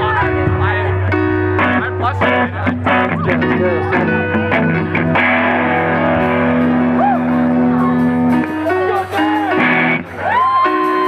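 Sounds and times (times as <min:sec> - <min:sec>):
low bass note: 0:00.0 - 0:08.9
guitar chords strummed: 0:00.0 - 0:11.0.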